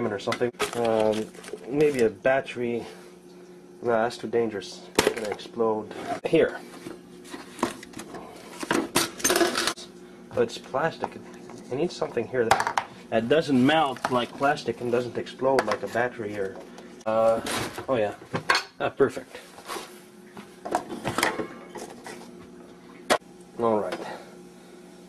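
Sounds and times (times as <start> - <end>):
faint steady hum: 0.0 - 25.0
kitchen objects clattering: 7.4 - 9.8, 20.7 - 22.2.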